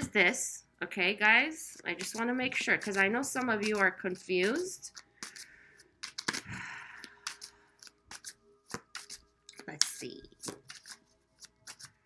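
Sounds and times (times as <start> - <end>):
cards being shuffled: 1.7 - 12.0
sharp card clicks: 6.0 - 9.2.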